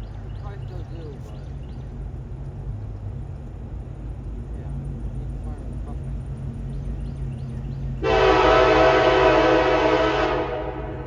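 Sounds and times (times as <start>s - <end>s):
low steady rumble: 0.0s - 11.0s
locomotive horn blast: 8.0s - 11.0s.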